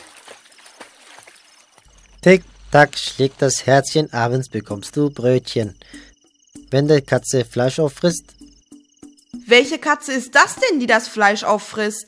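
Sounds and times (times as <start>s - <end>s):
small water drips: 0.0s - 2.6s
water splashing and sloshing: 0.0s - 2.7s.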